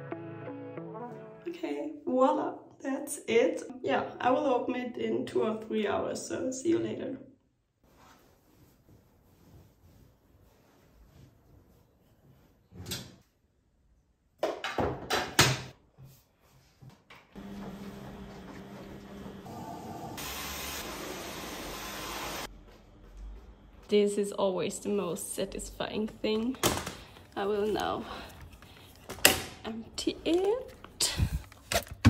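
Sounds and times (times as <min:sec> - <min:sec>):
laundry rustling: 0:07.8 - 0:12.8
washing machine running: 0:17.4 - 0:22.5.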